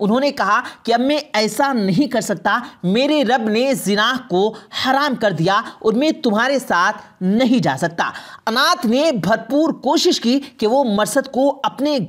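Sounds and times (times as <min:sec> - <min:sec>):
narrator telling a story: 0:00.0 - 0:12.0.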